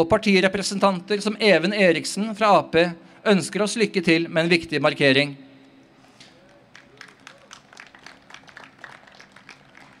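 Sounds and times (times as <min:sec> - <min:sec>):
faint scattered clapping: 0:06.2 - 0:10.0.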